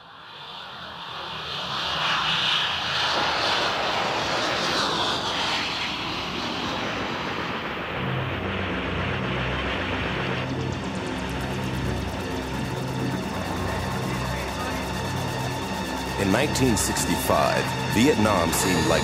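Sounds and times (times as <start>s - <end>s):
aircraft engine roar: 0.0s - 19.0s.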